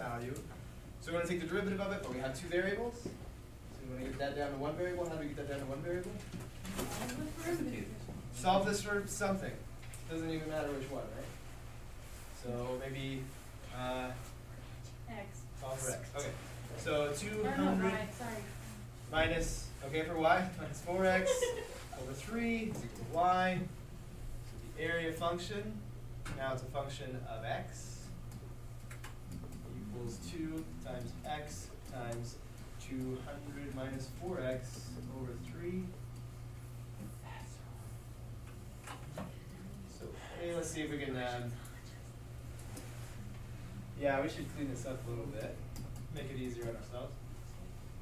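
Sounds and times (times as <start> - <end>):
low room hum: 0.0 - 48.0.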